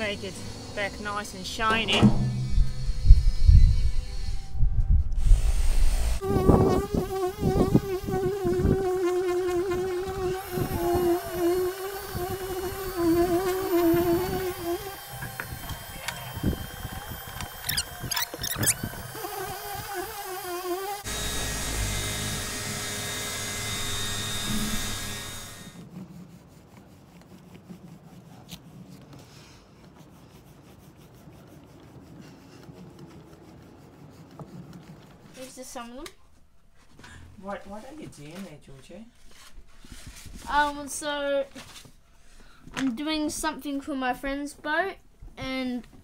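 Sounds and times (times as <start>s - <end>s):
low rumble: 1.8s - 6.2s
polisher motor whine: 9.6s - 25.8s.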